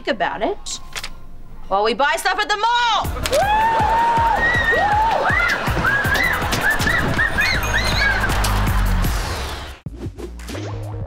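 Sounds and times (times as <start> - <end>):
upbeat sitcom music: 2.9 - 11.0
girls squealing: 3.3 - 8.4.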